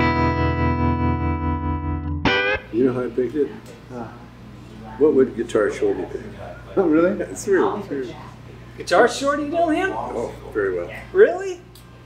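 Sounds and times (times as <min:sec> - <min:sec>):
electric guitar chord ringing: 0:00.0 - 0:02.8.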